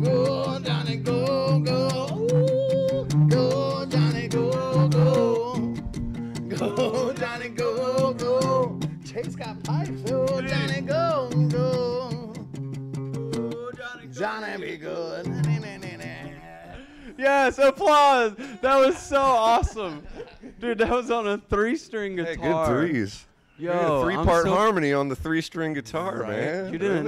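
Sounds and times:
person singing: 0:00.0 - 0:05.7, 0:06.4 - 0:12.4, 0:13.1 - 0:17.1.

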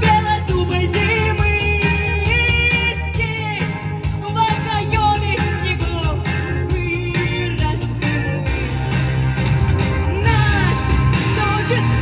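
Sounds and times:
woman singing into a microphone: 0:00.0 - 0:08.5, 0:10.2 - 0:12.0
pop backing track with bass: 0:00.0 - 0:12.0.

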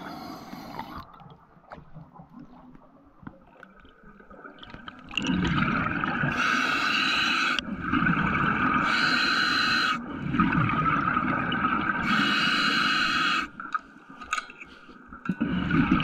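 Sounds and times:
bubbling gurgling water: 0:00.0 - 0:06.9, 0:07.5 - 0:09.2, 0:10.0 - 0:12.3, 0:15.2 - 0:16.0
diver breathing underwater: 0:06.2 - 0:07.6, 0:08.8 - 0:10.5, 0:11.9 - 0:13.6.

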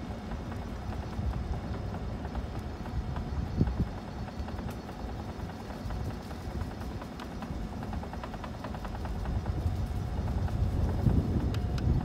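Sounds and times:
light clicks and rattles: 0:00.0 - 0:12.0
wind rumble on microphone: 0:00.0 - 0:12.0.

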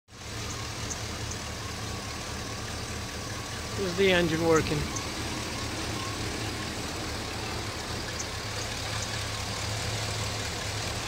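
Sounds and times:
truck engine idling: 0:00.1 - 0:11.0.

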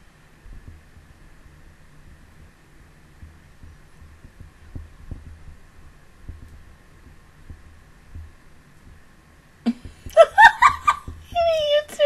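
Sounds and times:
low steady microphone hum: 0:00.0 - 0:12.0
soft low thumps: 0:00.0 - 0:12.0.

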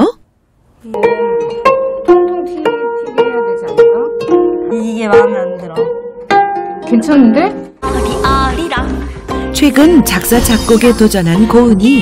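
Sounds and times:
plucked zither melody: 0:00.9 - 0:09.4.

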